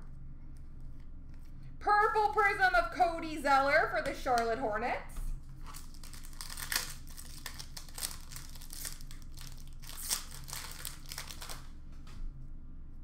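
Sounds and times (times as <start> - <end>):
foil wrapper crinkling: 5.6 - 11.8.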